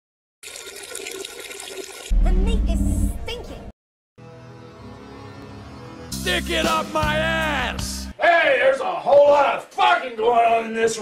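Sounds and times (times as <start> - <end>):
toilet flushing: 0.4 - 2.1.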